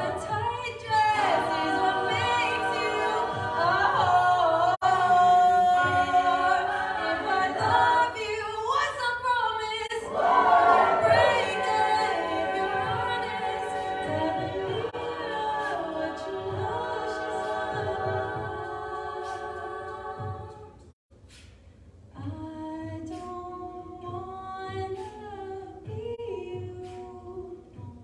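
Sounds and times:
a cappella group singing: 0.0s - 21.0s, 22.2s - 28.0s.

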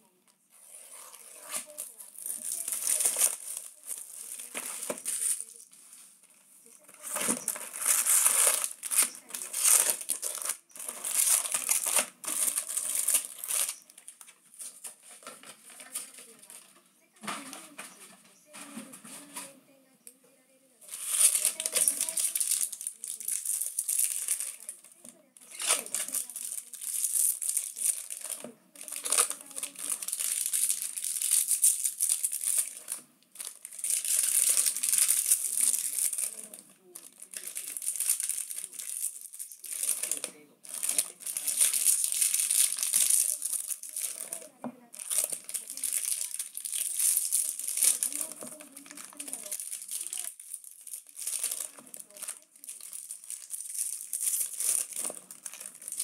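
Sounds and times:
foil wrappers crinkling: 0.7s - 16.7s, 20.8s - 56.0s.

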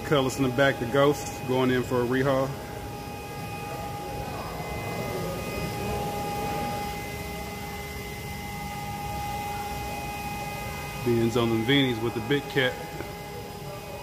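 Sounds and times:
high steady tones: 0.0s - 14.0s
shop room tone hum: 0.0s - 14.0s
faint background voices: 0.1s - 14.0s.

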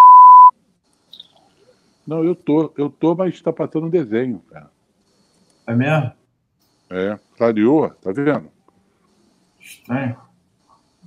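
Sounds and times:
steady test tone beep: 0.0s - 0.5s.

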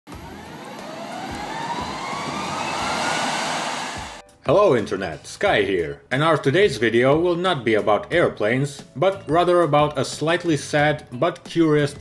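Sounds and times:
jet engine spooling up: 0.1s - 4.2s.

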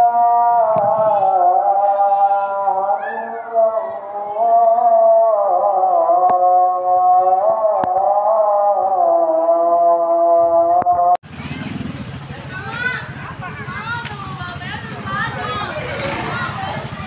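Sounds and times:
motorcycles passing outdoors: 11.2s - 17.0s.

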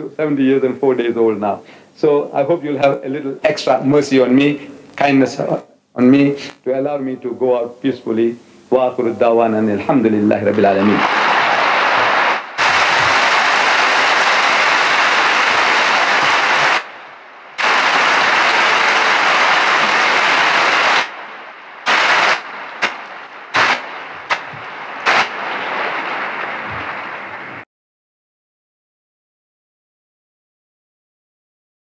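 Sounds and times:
audience applauding: 10.8s - 16.8s.

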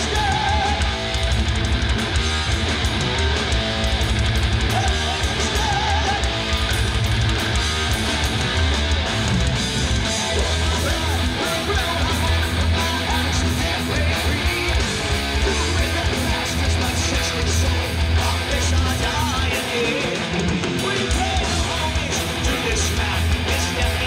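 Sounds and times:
heavy metal band playing: 0.0s - 24.0s.

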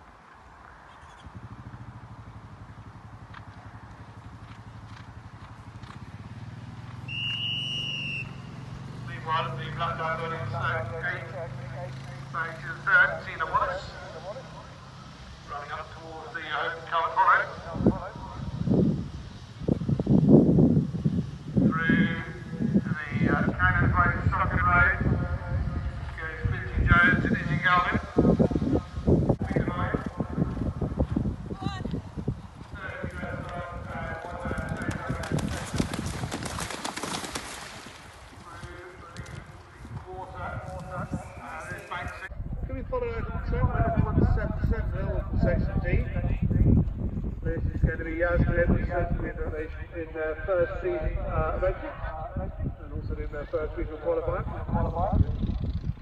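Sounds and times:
horses galloping on turf: 0.6s - 9.2s, 25.9s - 42.3s
announcer over loudspeaker: 9.0s - 14.7s, 48.0s - 55.2s
horse splashing through water: 34.7s - 39.5s.

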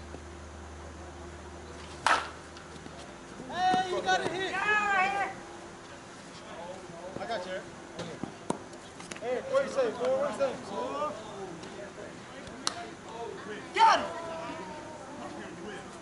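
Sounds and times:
bat hitting softball: 2.0s - 2.4s
players shouting and cheering: 3.4s - 5.5s, 12.6s - 16.0s.

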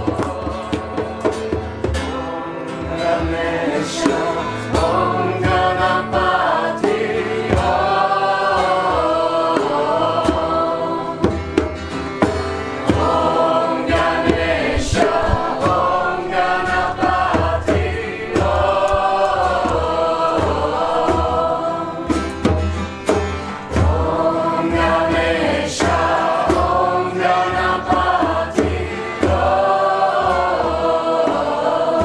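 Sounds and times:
group chanting in chorus: 0.0s - 11.7s, 12.8s - 32.0s
low steady accompaniment: 0.0s - 32.0s.

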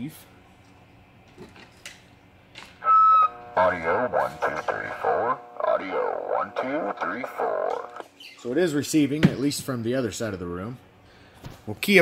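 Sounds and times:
radio speaker beep-like tone: 2.8s - 8.0s.

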